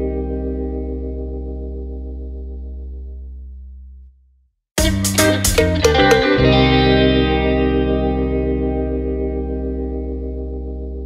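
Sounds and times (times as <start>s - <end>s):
guitar notes and chord: 0.0s - 3.3s, 4.8s - 11.0s.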